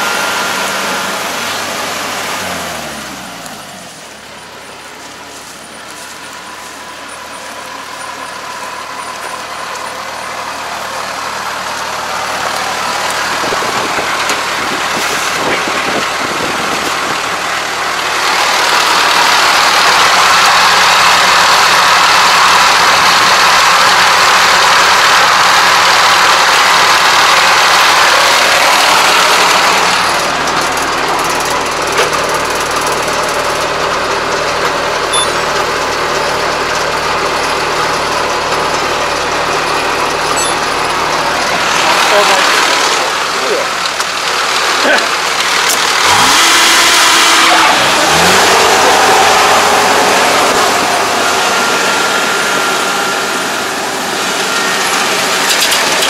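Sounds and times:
combine harvester running: 0.0s - 56.0s.

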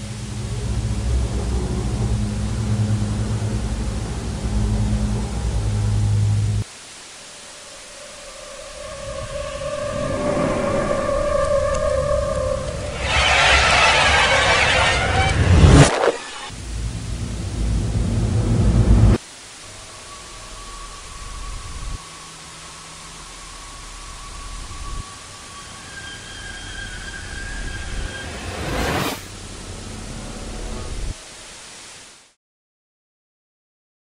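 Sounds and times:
low electronic drone: 0.0s - 6.7s, 7.3s - 31.2s
sustained higher tones: 0.0s - 31.1s
loud rushing hiss: 0.0s - 32.4s.

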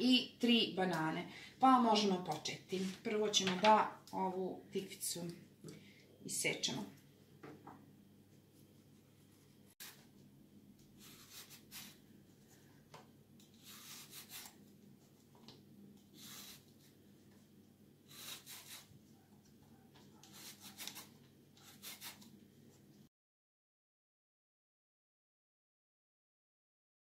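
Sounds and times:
peeler scraping vegetable skin: 9.8s - 10.1s, 11.0s - 12.0s, 13.4s - 14.6s, 16.2s - 16.8s, 18.1s - 18.9s, 20.2s - 22.3s.

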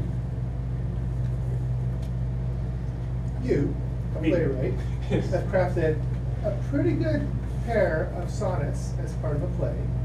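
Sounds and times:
low room tone hum: 0.0s - 10.0s.

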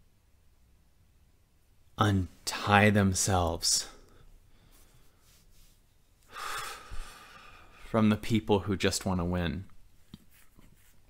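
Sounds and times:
person breathing in: 6.3s - 7.9s.

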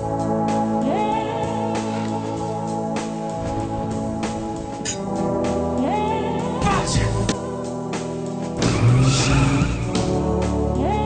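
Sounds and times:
music with sustained chords: 0.0s - 11.0s.

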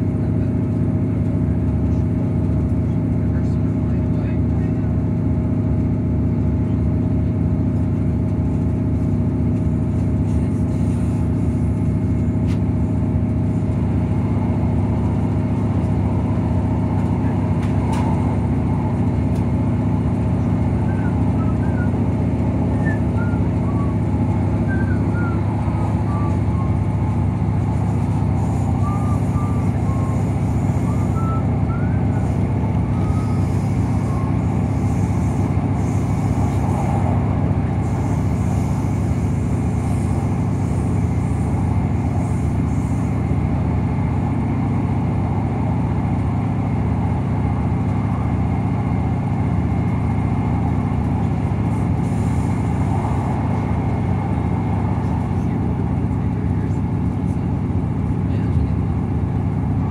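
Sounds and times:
diesel engine drone: 0.0s - 59.9s
train wheels rumbling on rail: 0.0s - 59.9s.

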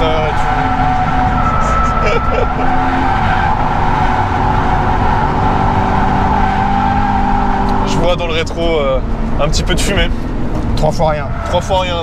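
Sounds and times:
car engine running hard: 0.0s - 12.0s.

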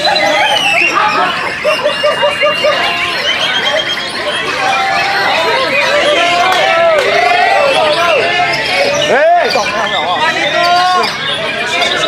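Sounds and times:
songbird whistling song: 0.0s - 6.4s.

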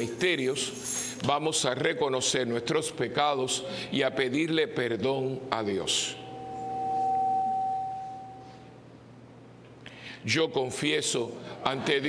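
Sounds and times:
pure tone feedback ringing: 5.6s - 9.3s.

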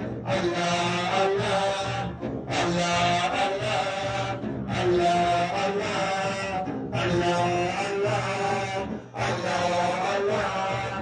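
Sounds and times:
men and boys chanting in unison: 0.2s - 11.0s.

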